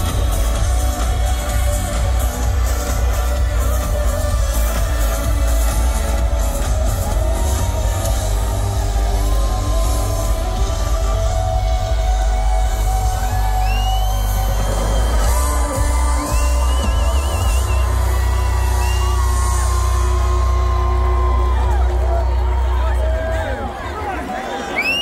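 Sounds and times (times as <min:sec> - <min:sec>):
loud live music over speakers: 0:00.0 - 0:25.0.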